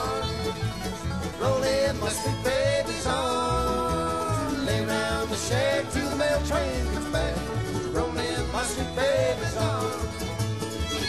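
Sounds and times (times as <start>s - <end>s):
bluegrass band playing: 0.0s - 11.0s.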